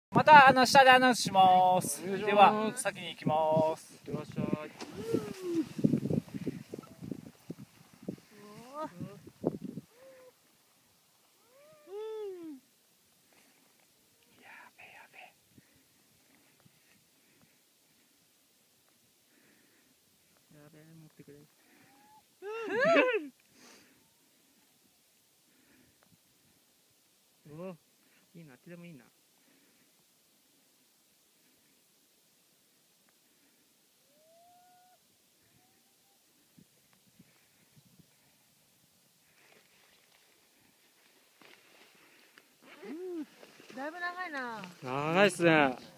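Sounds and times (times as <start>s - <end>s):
faint background hiss: 0.1s - 45.9s
person wordless vocal cry: 4.9s - 5.8s, 11.4s - 12.6s, 21.9s - 23.4s, 42.7s - 43.3s
faint pitched call: 11.4s - 12.6s, 21.6s - 23.0s, 34.0s - 36.3s.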